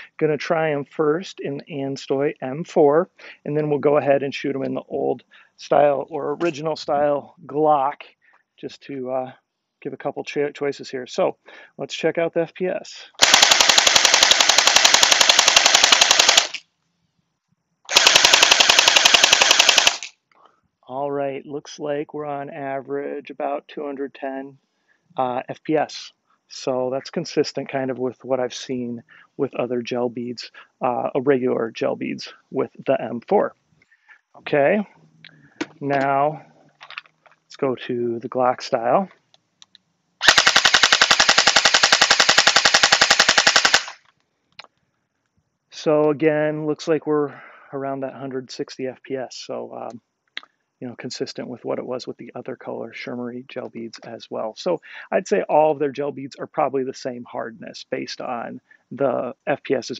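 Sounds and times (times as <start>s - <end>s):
blaster motor and gearbox: 13.2s - 16.6s, 17.9s - 20.1s
gel blaster firing full-auto: 13.2s - 16.6s, 17.9s - 20.1s, 40.2s - 44.0s.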